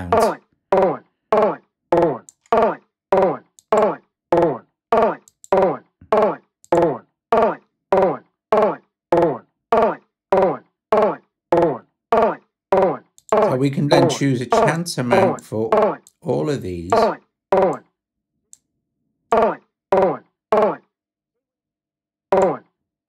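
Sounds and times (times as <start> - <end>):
chopped vocal sample repeating: 13.3 - 15.9.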